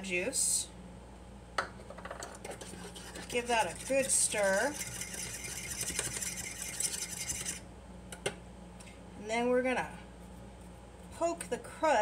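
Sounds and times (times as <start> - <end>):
utensil scraping metal bowl: 2.2 - 7.6.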